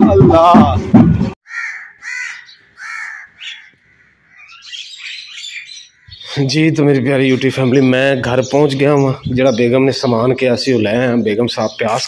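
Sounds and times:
loud voices: 0:00.0 - 0:01.2
crow cawing: 0:01.4 - 0:06.3
high-pitched bird chirps: 0:01.5 - 0:06.4.

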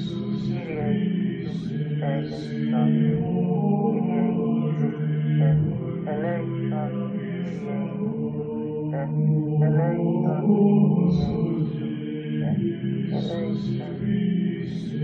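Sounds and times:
person singing devotional chant: 0:00.0 - 0:15.0.

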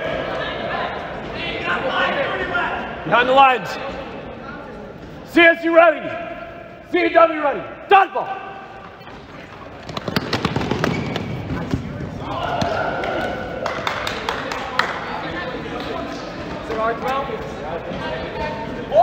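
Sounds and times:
balls bouncing on gym floor: 0:08.8 - 0:13.4
players shouting: 0:12.0 - 0:13.6.

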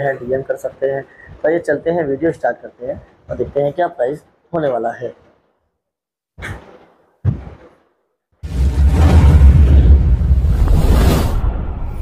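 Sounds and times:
person speaking: 0:00.0 - 0:05.2
whoosh sound effect: 0:08.5 - 0:12.0.

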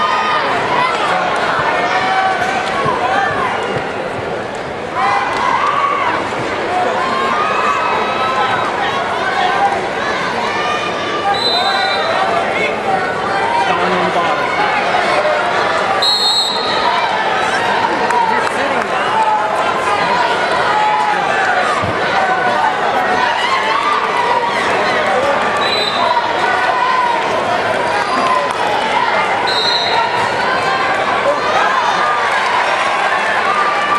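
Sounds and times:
crowd shouting: 0:00.0 - 0:04.2, 0:04.9 - 0:33.9.

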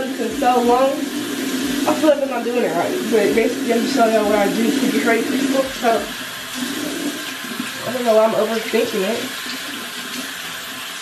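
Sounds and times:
faucet running into sink: 0:00.0 - 0:11.0.

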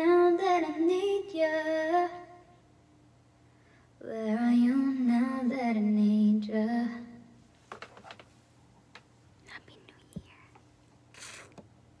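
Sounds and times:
person moving and handling things: 0:07.5 - 0:09.2
faint clicks and taps: 0:10.0 - 0:10.7.

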